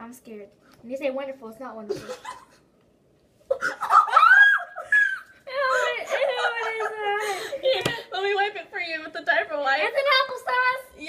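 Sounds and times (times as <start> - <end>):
girls laughing: 3.5 - 8.4.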